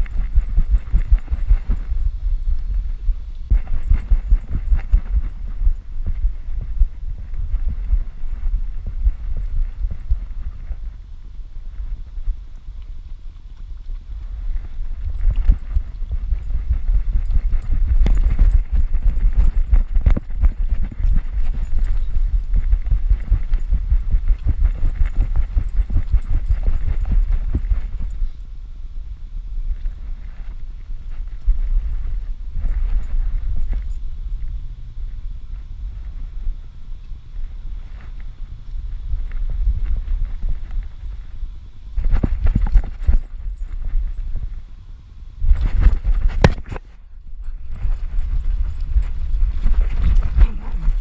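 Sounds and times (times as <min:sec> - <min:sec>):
paws striking dirt and leaves: 0:00.0 - 0:02.8, 0:03.5 - 0:06.7, 0:12.8 - 0:28.3, 0:45.5 - 0:51.0
wind rumble: 0:00.0 - 0:51.0.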